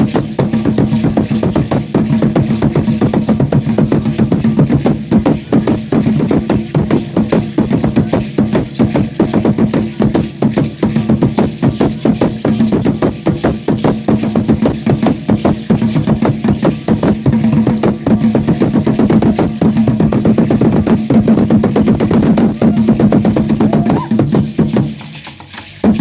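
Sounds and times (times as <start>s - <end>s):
ankle rattles rattling: 0.0s - 26.0s
large wooden drum beating: 0.0s - 26.0s.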